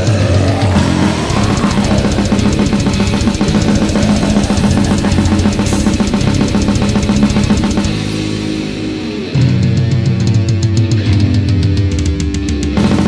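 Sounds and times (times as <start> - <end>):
death metal band playing: 0.0 - 13.0
fast drumming: 0.1 - 8.6, 12.8 - 13.0.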